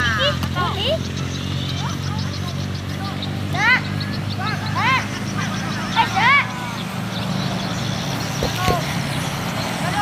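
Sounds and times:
players shouting calls: 0.0s - 7.8s, 8.4s - 9.2s
low engine-like hum: 0.0s - 10.0s
brief knocks: 8.4s - 8.9s.

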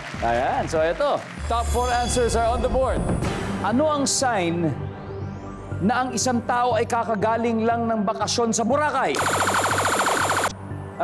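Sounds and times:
game show buzzer: 9.2s - 10.5s.

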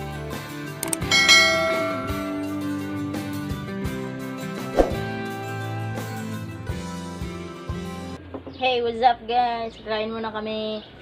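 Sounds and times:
background music: 0.0s - 8.2s
short click: 0.8s - 1.2s
bright bell ding: 0.8s - 3.2s.

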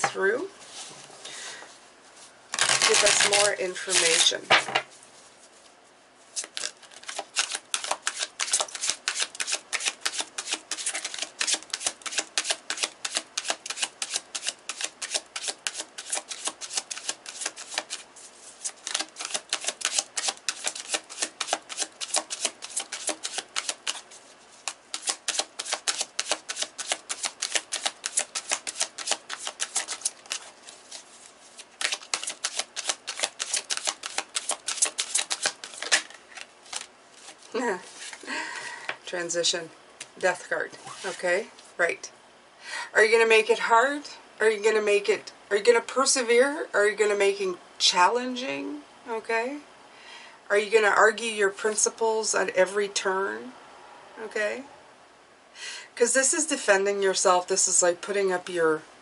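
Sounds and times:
cards being shuffled: 2.5s - 4.9s, 6.4s - 38.2s.

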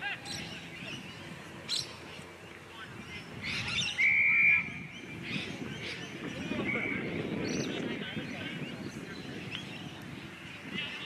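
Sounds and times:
distant shouts: 0.0s - 7.3s.

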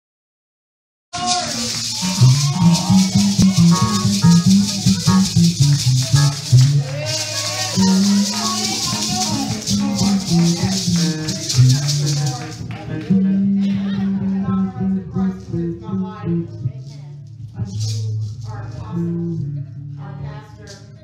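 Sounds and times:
shaker-like hiss: 1.2s - 12.6s
church band music: 1.2s - 12.7s
bass line: 1.2s - 21.0s.

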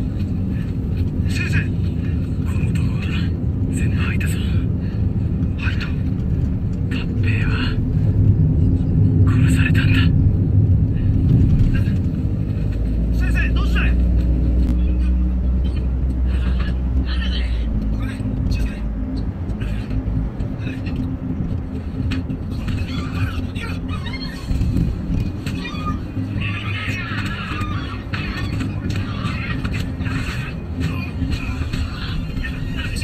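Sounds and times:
car engine droning: 0.0s - 33.0s
road noise: 0.0s - 33.0s.

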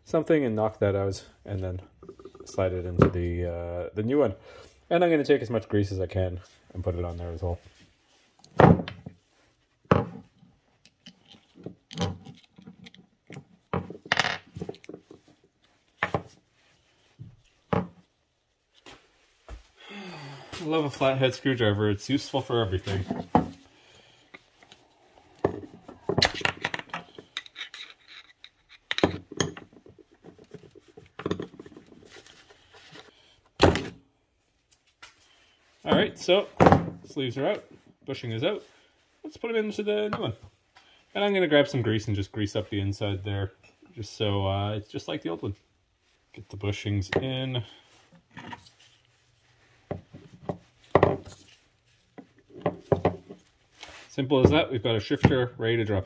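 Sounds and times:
metal parts knocking and clicking: 26.2s - 29.7s.

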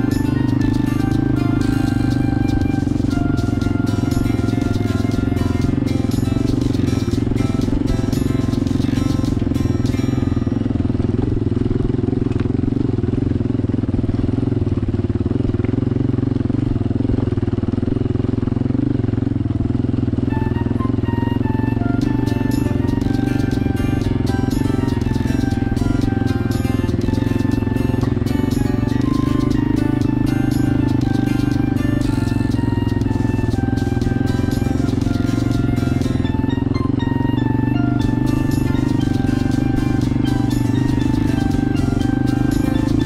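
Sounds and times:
background music: 0.0s - 11.0s, 20.3s - 43.0s
dirt bike engine running: 0.0s - 43.0s.

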